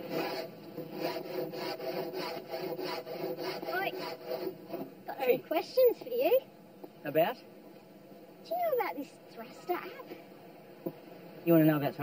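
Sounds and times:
sandpaper rasping: 0.1 - 4.8.

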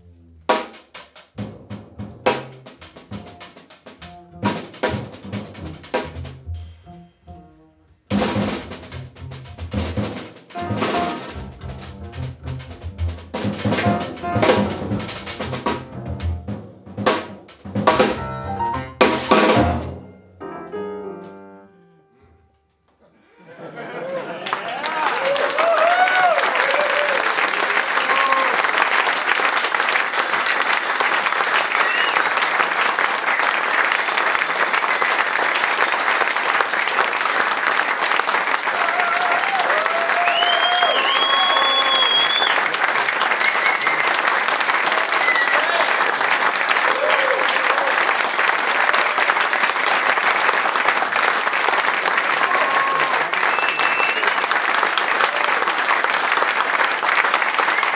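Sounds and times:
audience applauding: 23.6 - 57.9.

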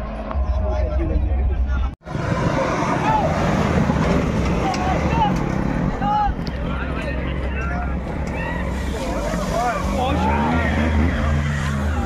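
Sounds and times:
off-road engine rumbling: 0.0 - 12.0
spectators shouting: 2.2 - 6.6, 7.8 - 12.0.

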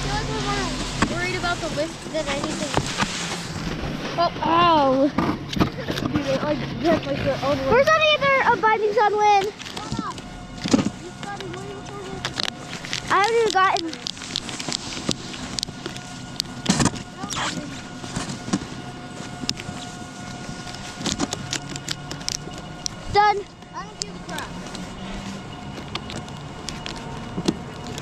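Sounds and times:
board scraping on snow: 0.0 - 21.4
ratchet straps clicking: 9.4 - 24.9.

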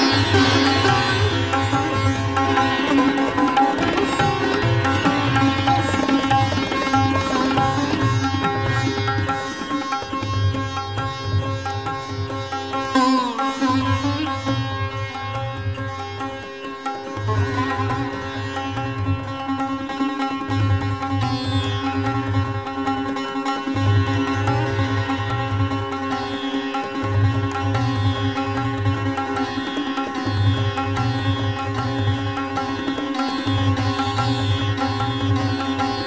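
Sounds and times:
low tabla strokes: 0.0 - 13.1
sitar playing fast runs: 0.0 - 36.0.

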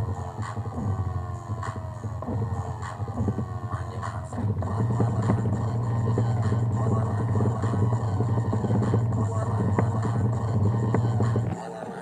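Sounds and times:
music through small speaker: 0.0 - 12.0
deep bass note: 4.3 - 11.6.

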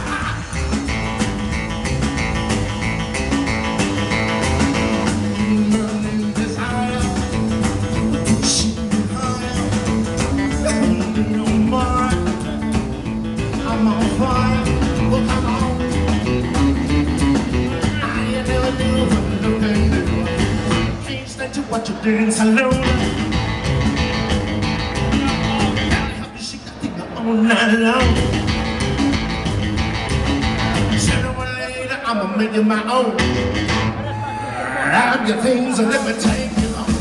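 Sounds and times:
live rockabilly band playing: 0.0 - 37.0.

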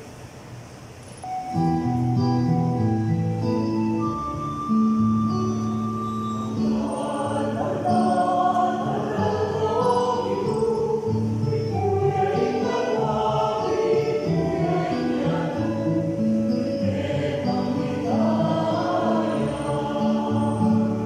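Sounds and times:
mixed choir singing: 6.5 - 21.0.

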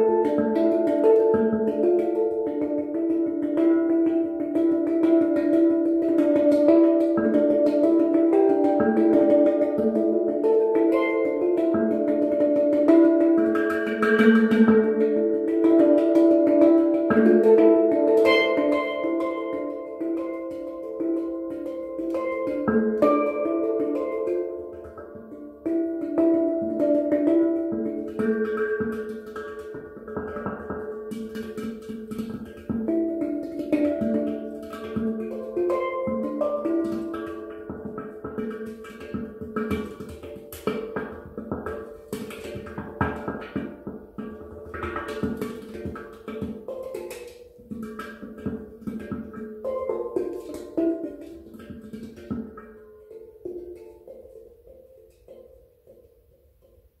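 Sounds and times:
handpan melody: 0.0 - 57.0.

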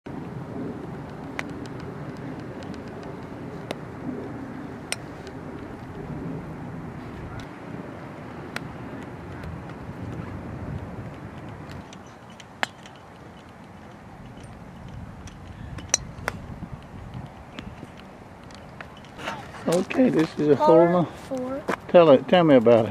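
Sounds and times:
steady low rumble: 0.1 - 19.7
golf clubs striking balls: 1.1 - 3.9, 4.8 - 6.1, 10.7 - 20.0.

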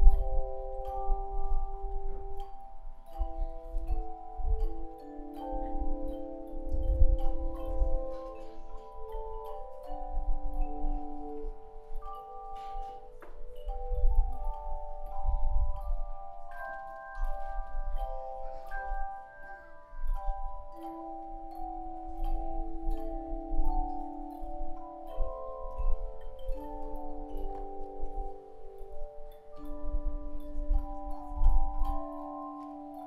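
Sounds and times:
chimes ringing: 0.0 - 33.0.

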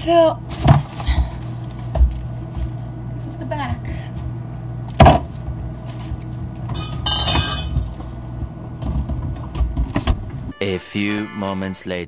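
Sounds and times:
refrigerator hum: 0.0 - 10.5
small knocks and rustles: 0.5 - 2.8, 5.0 - 10.2
glass clink: 6.8 - 7.8
refrigerator door shutting: 8.8 - 10.5.

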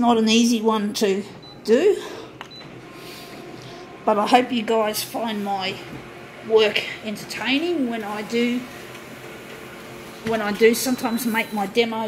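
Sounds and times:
copier running with whine: 0.8 - 12.0.

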